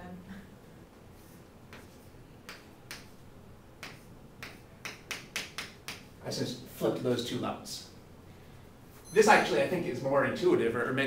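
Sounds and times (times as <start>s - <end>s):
chalk tapping on chalkboard: 1.7s - 3.2s, 3.8s - 6.1s.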